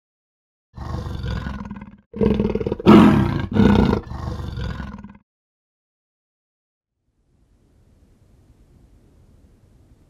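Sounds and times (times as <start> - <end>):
big cat roaring: 0.8 - 5.2.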